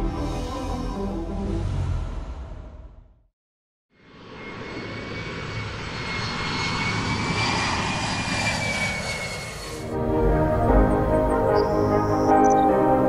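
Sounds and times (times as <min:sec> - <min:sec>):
jet airplane flying past: 0:04.0 - 0:12.6.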